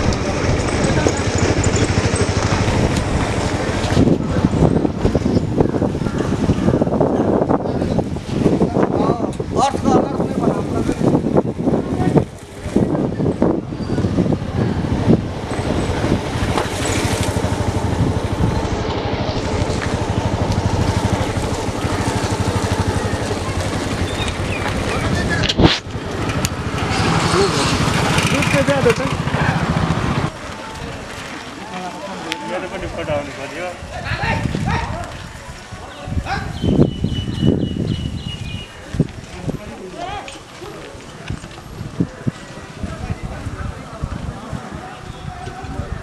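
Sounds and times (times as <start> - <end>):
motorcycle engine running: 0.0 - 8.6, 14.0 - 31.3
steady high tone: 30.5 - 33.6.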